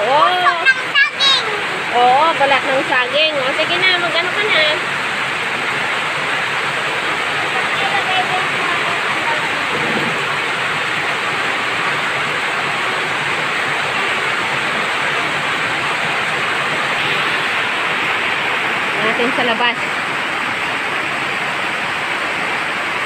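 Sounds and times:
heavy rain: 0.0s - 23.0s.

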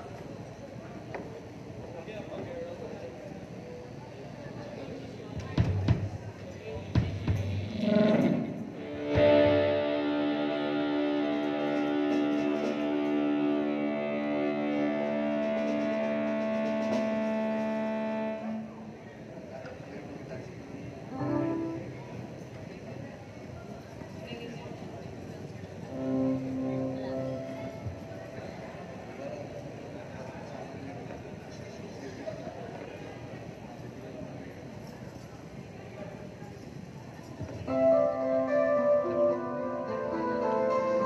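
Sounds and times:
indistinct murmuring: 5.0s - 19.5s
hall noise: 5.4s - 19.5s, 25.7s - 29.5s
electric guitar through effects: 7.1s - 19.0s, 21.2s - 22.0s, 25.9s - 28.6s
live band sustained chord: 7.1s - 19.1s, 21.1s - 22.3s, 25.9s - 28.8s, 37.7s - 41.0s.

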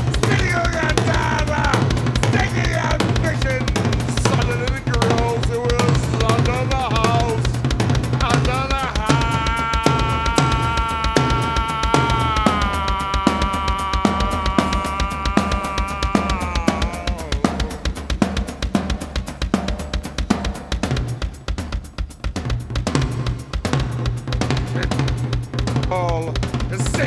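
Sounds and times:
drum kit playing a steady beat: 0.0s - 27.0s.

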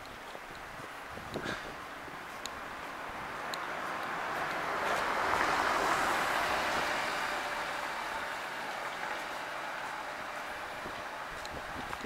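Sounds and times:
vehicle passing: 2.2s - 12.0s.

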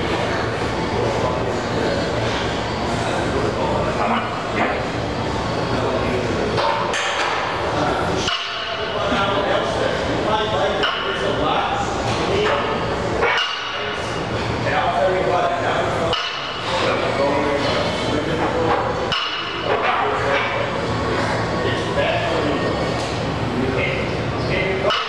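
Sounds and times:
gym background noise: 0.0s - 25.0s.

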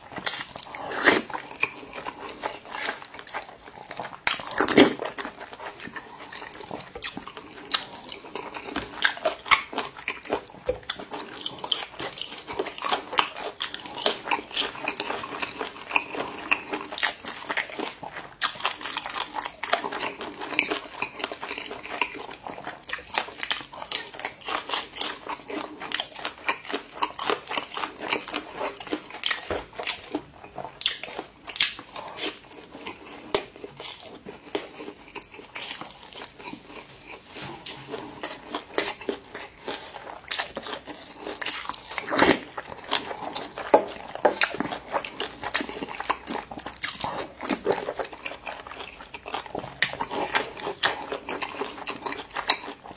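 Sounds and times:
person chewing food: 0.0s - 52.9s.

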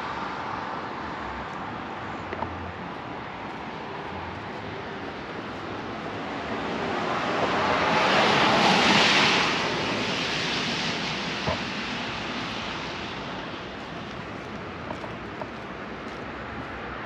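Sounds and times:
vehicle tyre hiss on wet road: 2.9s - 17.0s.

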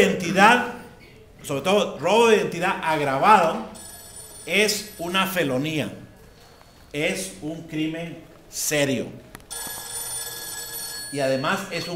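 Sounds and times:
steady high ringing tone: 3.7s - 6.0s, 9.5s - 11.9s.

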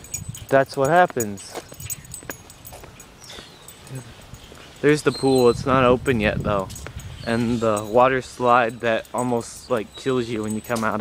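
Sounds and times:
footsteps on paved path: 0.0s - 11.0s
outdoor ambience: 0.0s - 11.0s
man's voice: 4.8s - 11.0s.

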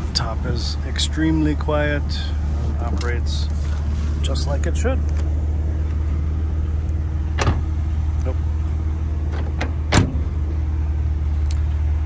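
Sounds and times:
car engine idling: 0.0s - 12.0s
car door shutting: 7.3s - 7.8s, 9.3s - 10.4s.

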